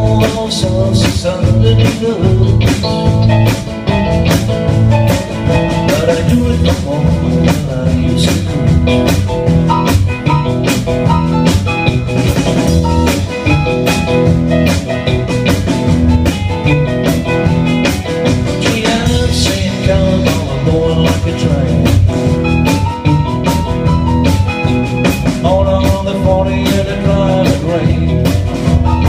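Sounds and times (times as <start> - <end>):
bass guitar: 0.0 - 29.0
drum kit beat: 0.0 - 29.0
electric guitar: 0.0 - 29.0.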